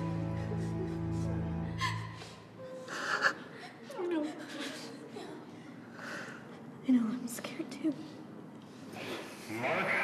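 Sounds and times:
held music: 0.0 - 2.4.

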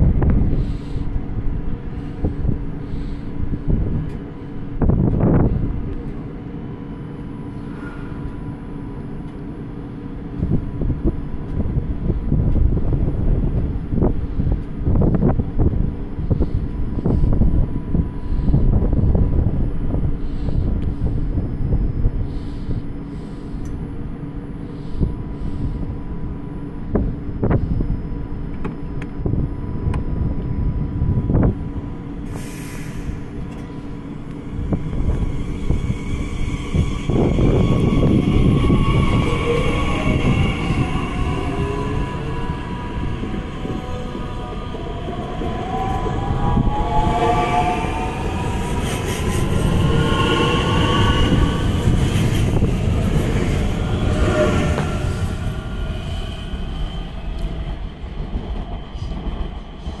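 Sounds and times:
train wheel rolling noise: 0.0 - 22.9, 26.8 - 60.0
electric train motors whining: 32.2 - 59.2.

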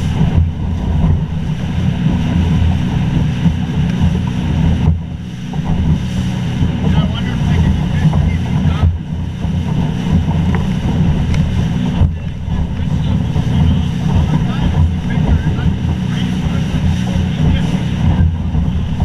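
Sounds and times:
boat motor: 0.0 - 19.0
wind buffeting microphone: 0.0 - 19.0.

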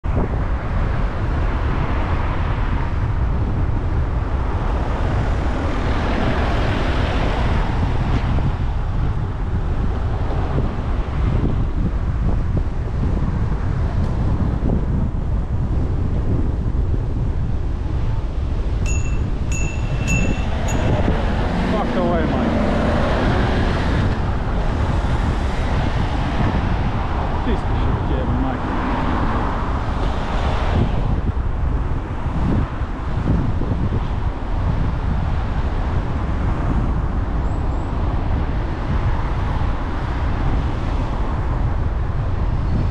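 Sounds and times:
passing traffic: 0.0 - 42.9
road noise: 0.0 - 42.9
wind rush: 0.0 - 42.9
short high chirps: 18.9 - 21.0
van engine overtaking: 19.3 - 32.2.

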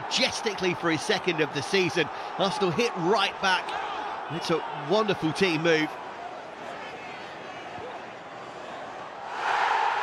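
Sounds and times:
stadium crowd roaring: 0.0 - 10.0.

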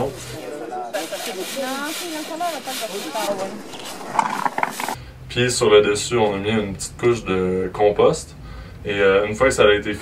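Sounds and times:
soil shaken through wire sieve: 0.0 - 5.0.

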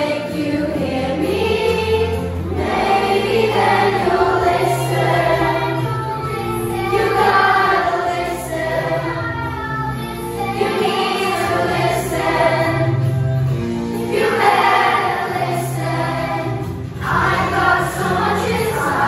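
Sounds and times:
children's chorus singing: 0.0 - 13.2, 14.0 - 19.0.

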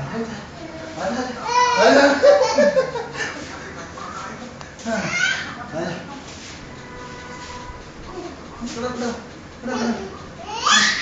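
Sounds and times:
child squealing: 10.5 - 11.0.

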